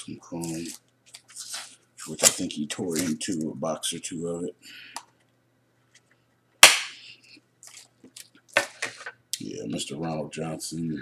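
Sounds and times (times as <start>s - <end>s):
cards and packaging rustling: 0.4s - 3.5s
sharp snap: 6.6s - 7.0s.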